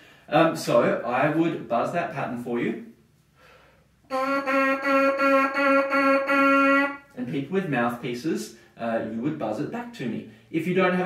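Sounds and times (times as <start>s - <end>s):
trumpet mouthpiece buzzing: 4.0s - 7.2s.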